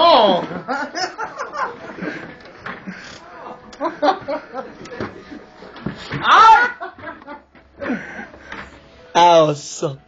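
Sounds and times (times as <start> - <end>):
men chuckling: 0.4 - 2.4, 3.0 - 5.5, 6.5 - 8.4.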